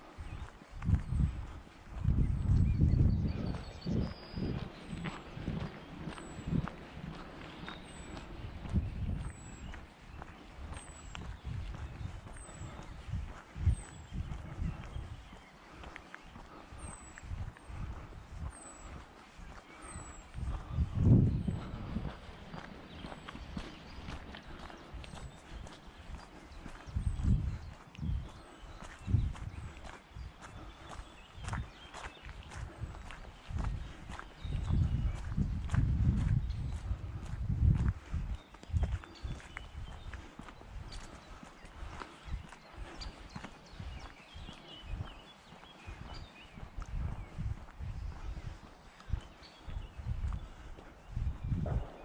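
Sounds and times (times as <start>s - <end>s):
wind buffeting microphone: 0.0s - 52.0s
footsteps on gritty road: 0.2s - 52.0s.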